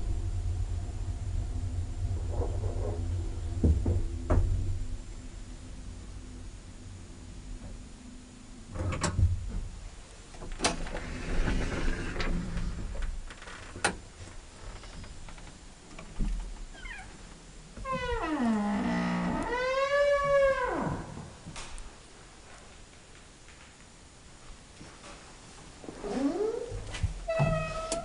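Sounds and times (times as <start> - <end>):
long pitch-sliding squeal: 18.0 - 21.1.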